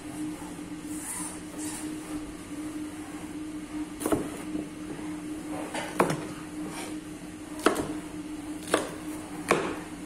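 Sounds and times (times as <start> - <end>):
machine hum: 0.0 - 10.0.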